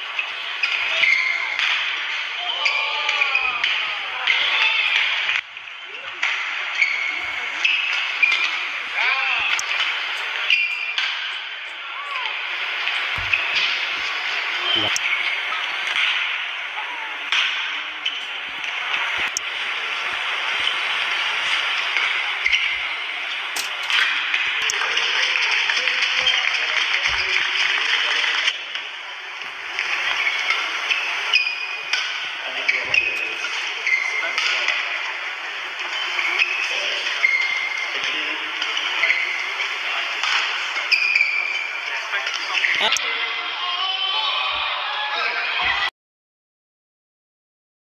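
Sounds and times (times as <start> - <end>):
crowd voices: 0.0 - 45.9
shoes squeaking on court: 9.4 - 15.4, 32.6 - 34.2, 36.0 - 37.8.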